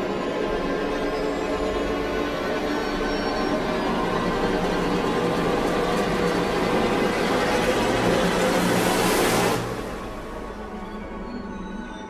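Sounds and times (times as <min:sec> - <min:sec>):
dark background music: 0:00.0 - 0:12.0.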